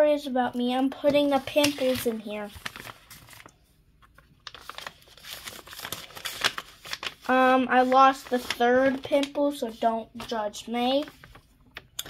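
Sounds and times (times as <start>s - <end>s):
paper rustling and crinkling: 0.6s - 12.0s.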